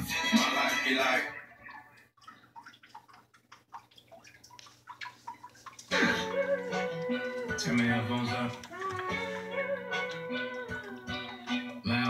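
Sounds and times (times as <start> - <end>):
aquarium water dripping and bubbling: 0.0 - 12.0.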